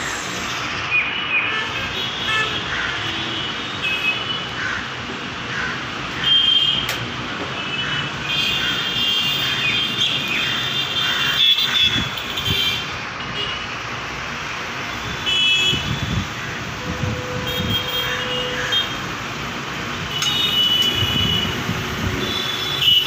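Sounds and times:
background traffic noise: 0.0s - 23.0s.

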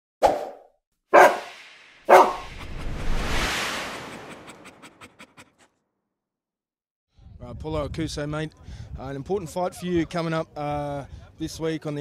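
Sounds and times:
dog barking: 1.2s - 1.5s, 2.1s - 2.4s
rising whoosh: 1.2s - 5.6s.

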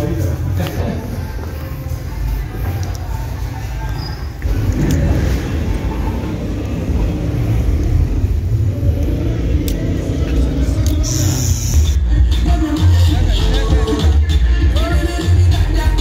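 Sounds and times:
bass-heavy party music: 0.0s - 16.0s
voices: 0.0s - 16.0s.

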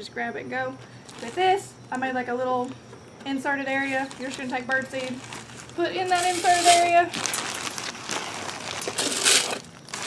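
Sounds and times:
plastic bag crinkling: 0.8s - 2.8s, 3.6s - 10.0s.

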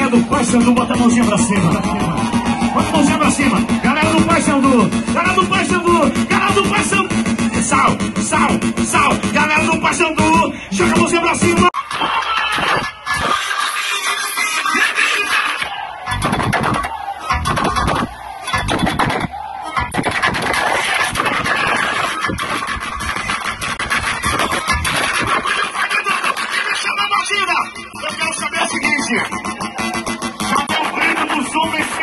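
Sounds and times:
loud dance music: 0.0s - 32.0s.

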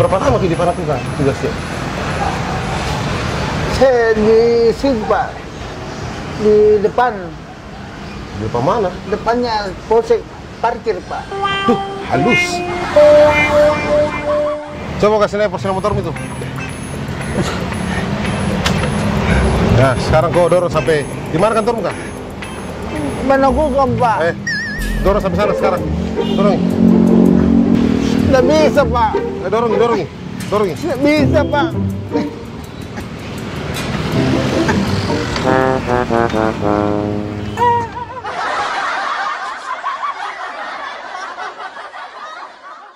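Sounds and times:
group of people laughing: 17.3s - 18.1s, 29.1s - 30.1s, 37.6s - 42.9s.

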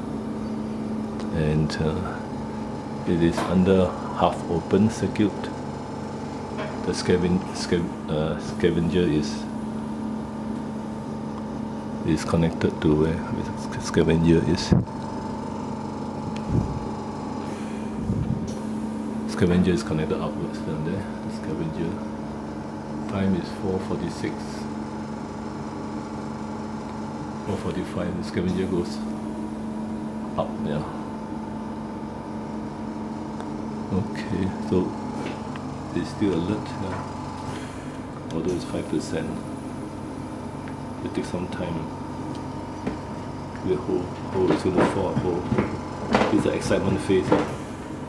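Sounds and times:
steady mechanical hum: 0.0s - 48.0s.

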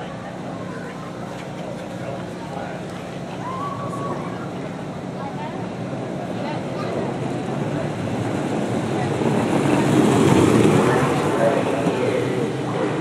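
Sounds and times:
cart wheels rumbling on asphalt: 6.9s - 13.0s.

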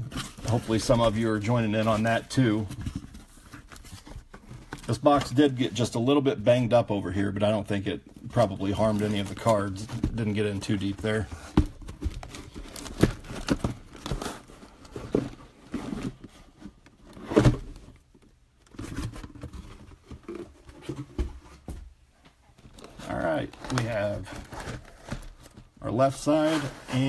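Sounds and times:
man talking: 0.4s - 2.8s, 4.8s - 11.4s, 23.0s - 24.5s, 25.8s - 27.0s
cardboard boxes knocking and scraping: 8.7s - 18.0s, 18.7s - 21.9s.

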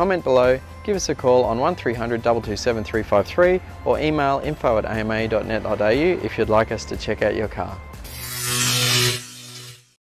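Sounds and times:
hissing electric crackle: 8.2s - 10.0s.

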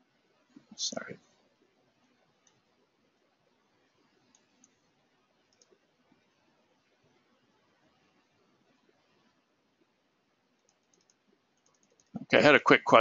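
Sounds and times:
computer mouse clicks: 2.4s - 2.7s, 3.9s - 5.8s, 10.5s - 12.2s.

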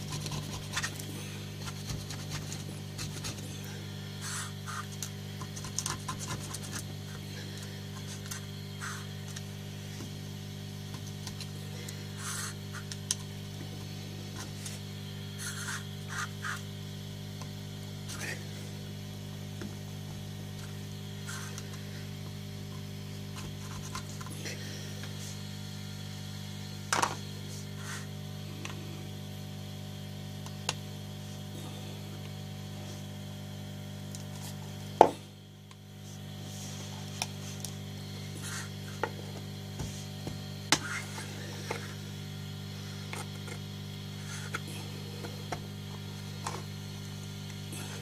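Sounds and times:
steady electrical hum: 0.0s - 48.0s.

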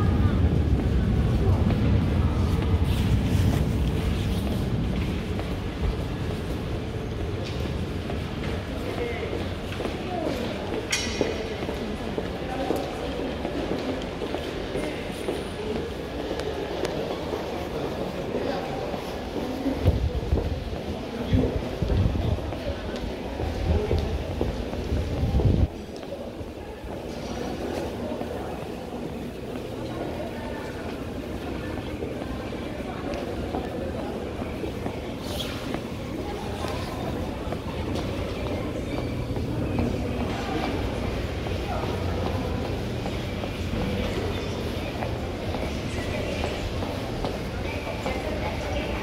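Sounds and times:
low station rumble: 0.0s - 49.0s
steady hum of hall: 0.0s - 49.0s.

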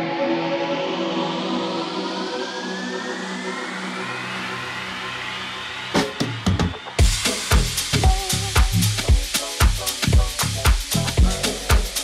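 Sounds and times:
rising synth sweep: 0.0s - 12.0s
sharp drum hit: 7.0s - 12.0s.

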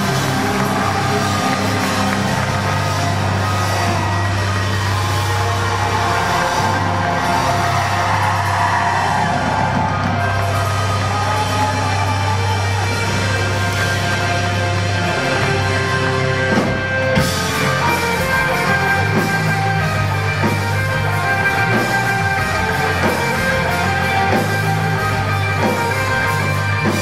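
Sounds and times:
rock band playing live: 0.0s - 27.0s.

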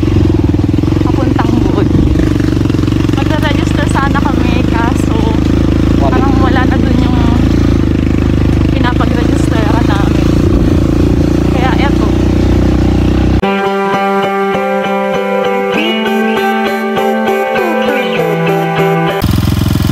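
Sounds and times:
motorcycle engine running: 0.0s - 19.9s
voices talking: 1.0s - 2.4s, 3.1s - 7.5s, 8.6s - 10.3s, 11.4s - 12.2s, 15.6s - 19.2s
strummed guitar music: 13.4s - 19.2s.

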